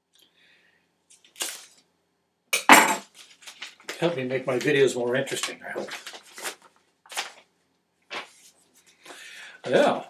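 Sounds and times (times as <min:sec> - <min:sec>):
envelope paper ripping: 0:01.2 - 0:01.8, 0:05.4 - 0:07.5.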